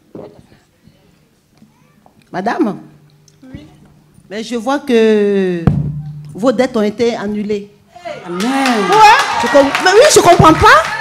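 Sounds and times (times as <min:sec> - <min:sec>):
woman speaking into microphone: 0:06.4 - 0:10.9.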